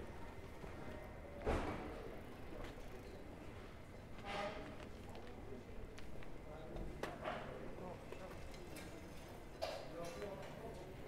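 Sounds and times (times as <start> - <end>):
city street ambience: 0.0 - 11.0.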